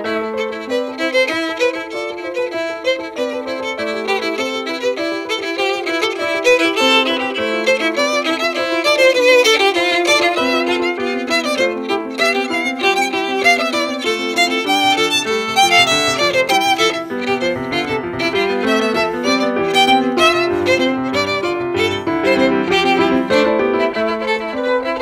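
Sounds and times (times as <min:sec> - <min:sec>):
keyboard accompaniment: 0:00.0 - 0:25.0
violin melody: 0:00.0 - 0:25.0.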